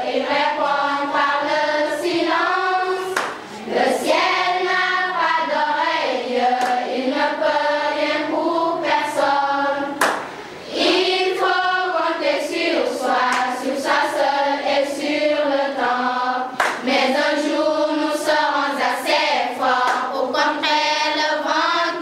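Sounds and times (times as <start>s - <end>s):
children's choir singing: 0.0s - 22.0s.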